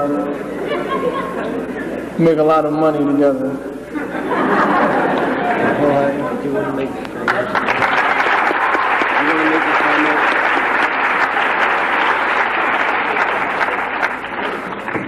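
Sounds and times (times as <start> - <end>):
audience applauding: 7.2 - 15.0.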